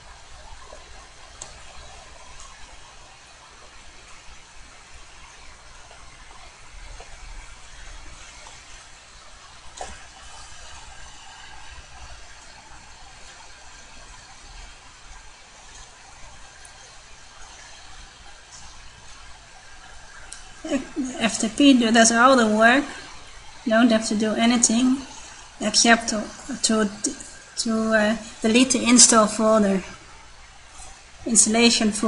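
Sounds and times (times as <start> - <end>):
steady hiss: 0.0 - 32.0.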